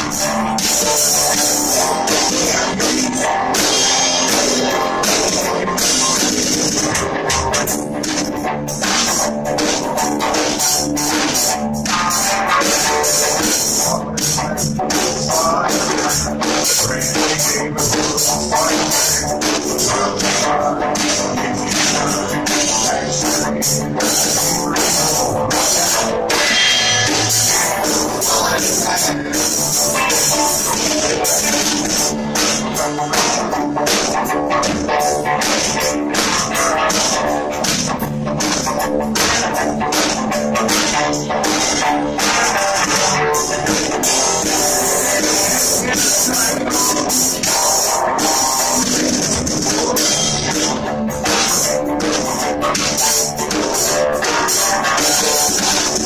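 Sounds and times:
drum kit with cymbals: 0.0s - 56.0s
electric guitar: 0.0s - 56.0s.

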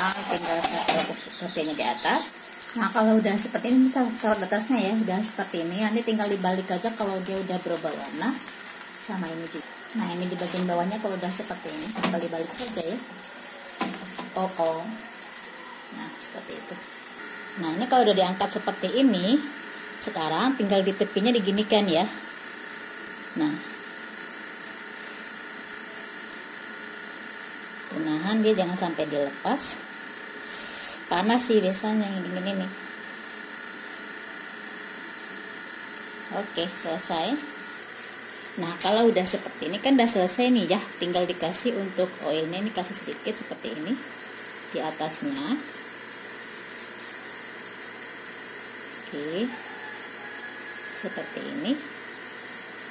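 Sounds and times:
background hum and hiss: 0.0s - 52.9s.

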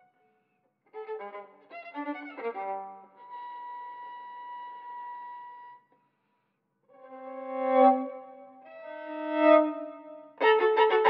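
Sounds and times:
solo violin: 0.9s - 5.9s, 6.9s - 11.0s.

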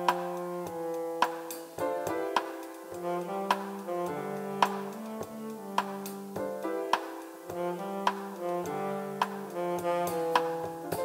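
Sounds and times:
drum and cymbal strokes: 0.0s - 11.0s
piano: 0.0s - 11.0s
saxophone melody: 0.0s - 11.0s.

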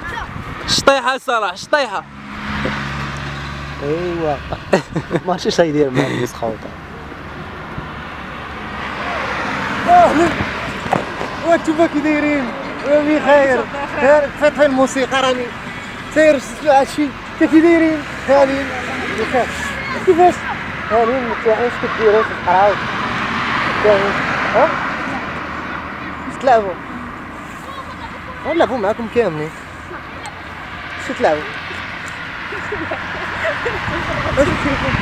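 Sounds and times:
car approaching on road: 0.0s - 35.0s
people talking: 3.8s - 6.8s, 9.0s - 10.8s, 11.4s - 22.8s, 23.8s - 26.8s, 32.5s - 35.0s.

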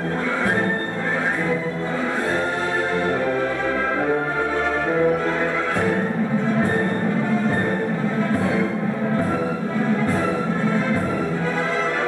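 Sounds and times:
orchestral ballet music: 0.0s - 12.0s.

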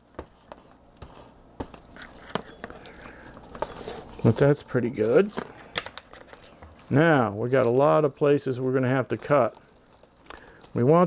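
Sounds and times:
plastic film rustling and crinkling: 0.0s - 11.0s.

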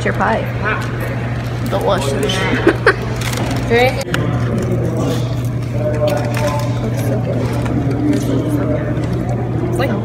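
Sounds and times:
indistinct background talk: 0.0s - 10.0s
person laughing: 2.4s - 3.2s.

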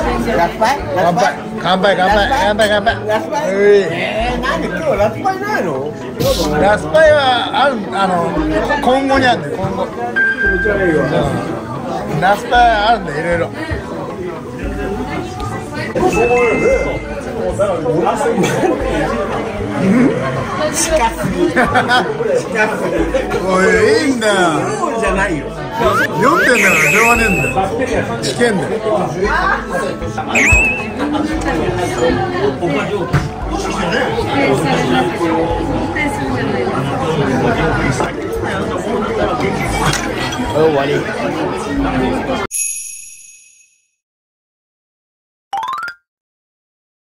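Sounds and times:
people chattering: 0.0s - 42.5s
overlapping voices chatter: 25.5s - 28.5s.

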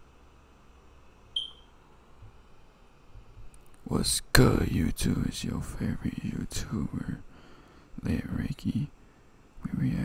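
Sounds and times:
faint low hum: 0.0s - 10.0s
short high beep: 1.4s - 1.7s.

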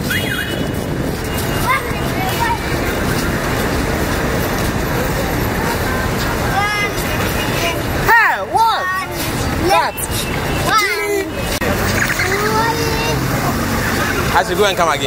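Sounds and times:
roadside traffic noise: 0.0s - 15.0s
faint voices of people: 1.4s - 15.0s.

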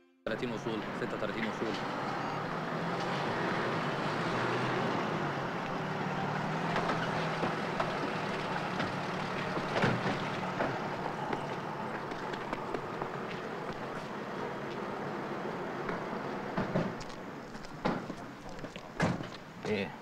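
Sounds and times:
steady background noise: 0.3s - 20.0s
car engine idling: 0.4s - 19.6s.

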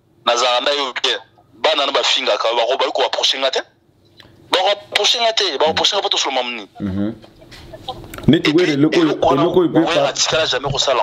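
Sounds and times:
man talking: 4.5s - 7.2s, 8.3s - 11.0s.

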